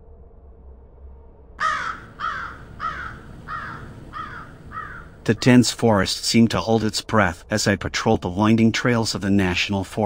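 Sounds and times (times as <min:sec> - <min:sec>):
bird calling: 0:01.6 - 0:05.5.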